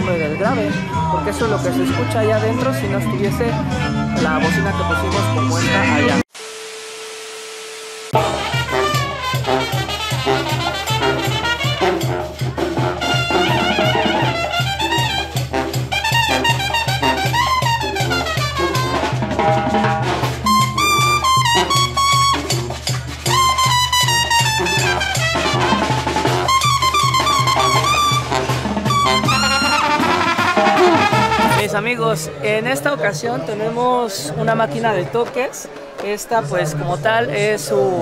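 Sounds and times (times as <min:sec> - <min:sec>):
latin brass band music: 0:08.1 - 0:35.6
pulsing bass beat: 0:08.2 - 0:31.7.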